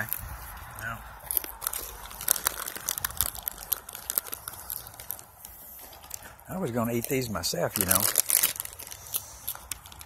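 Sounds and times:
goat crunching peanuts: 0:00.0 - 0:10.0
plastic bag crinkling: 0:00.0 - 0:10.0.

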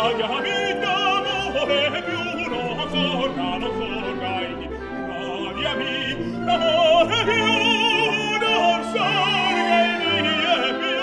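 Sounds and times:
operatic singing with vibrato: 0:00.0 - 0:11.0
orchestral accompaniment: 0:00.0 - 0:11.0.

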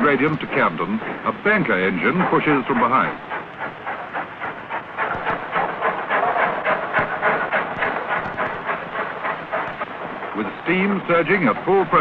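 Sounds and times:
steam hissing: 0:00.0 - 0:12.0
steam locomotive chuffing: 0:00.0 - 0:12.0.

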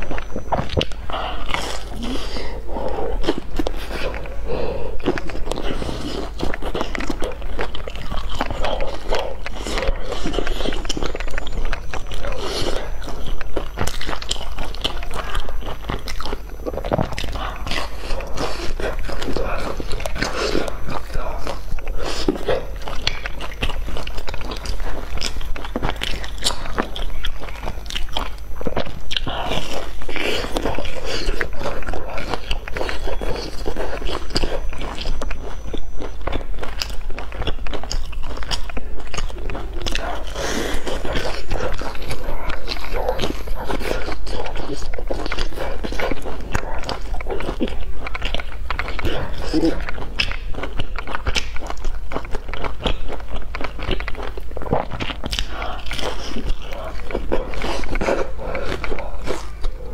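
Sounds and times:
biting and chewing crisp food: 0:00.0 - 0:59.9.

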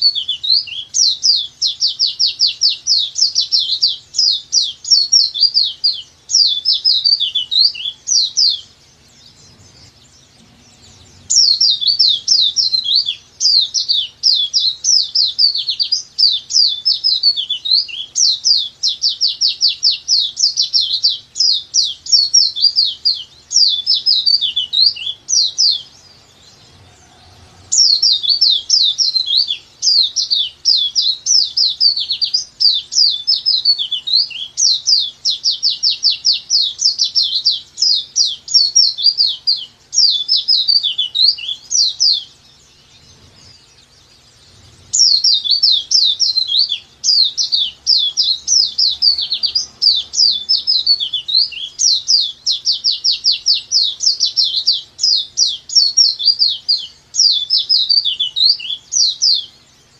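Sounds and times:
bird twittering song: 0:00.0 - 0:59.9.

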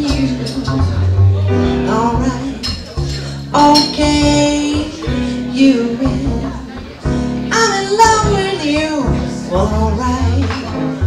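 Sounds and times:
woman singing: 0:00.0 - 0:01.1, 0:01.7 - 0:02.9, 0:03.5 - 0:11.0
piano: 0:00.0 - 0:11.0
upright bass: 0:00.0 - 0:11.0.

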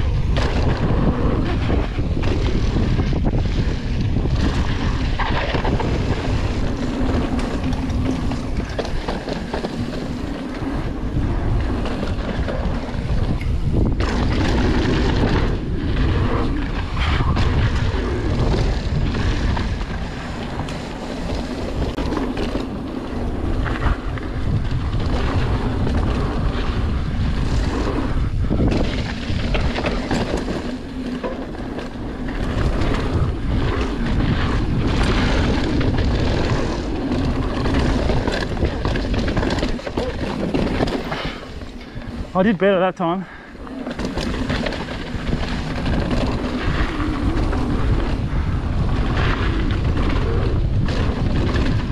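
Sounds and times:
bike clattering over bumps: 0:00.0 - 0:51.9
bike tyre roar: 0:00.0 - 0:51.9
wind rushing on microphone: 0:00.0 - 0:51.9.

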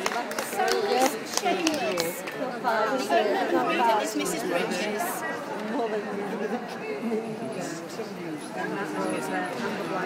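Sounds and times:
chatter of many people: 0:00.0 - 0:10.0.

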